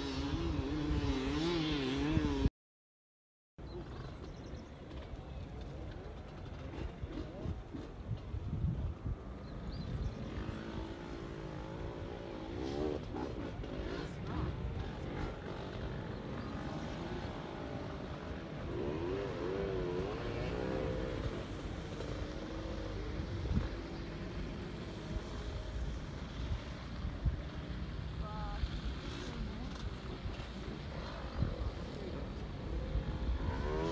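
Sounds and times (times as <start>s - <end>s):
distant dirt bike engines revving: 0.0s - 2.5s, 3.6s - 33.9s.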